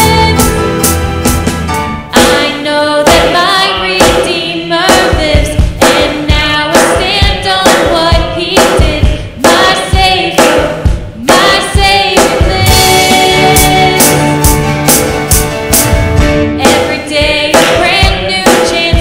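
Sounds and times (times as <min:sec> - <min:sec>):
acoustic guitar: 0:00.0 - 0:02.5, 0:12.3 - 0:19.0
steady beat: 0:03.1 - 0:19.0.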